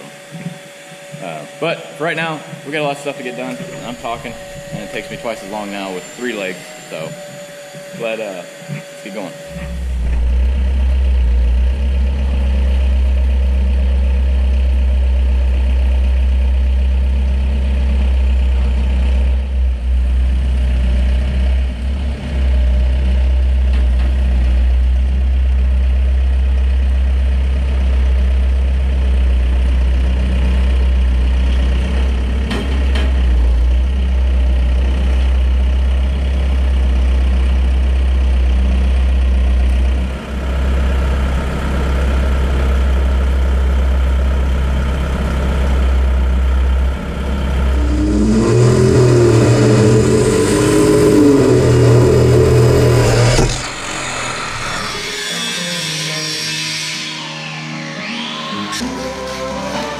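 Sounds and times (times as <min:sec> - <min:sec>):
engine idling with deep hum: 0:09.5 - 0:53.9
music: 0:55.0 - 0:59.9.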